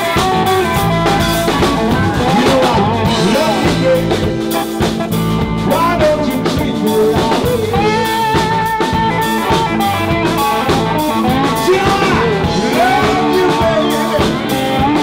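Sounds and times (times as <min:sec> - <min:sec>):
drum kit beat: 0:00.0 - 0:15.0
electric guitar: 0:00.0 - 0:15.0
man singing: 0:01.1 - 0:15.0.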